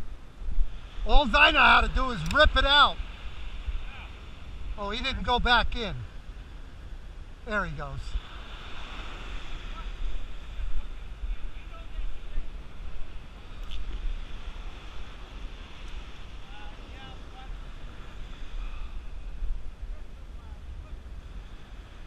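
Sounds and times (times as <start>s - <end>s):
wind buffeting microphone: 0.0s - 7.5s, 8.1s - 22.0s
surf breaking on beach: 0.6s - 22.0s.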